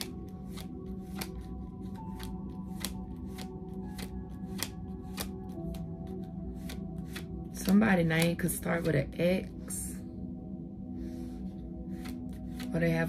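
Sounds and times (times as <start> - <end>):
cards being shuffled: 0.0 - 9.0, 11.9 - 12.8
soft ambient music: 0.0 - 13.0.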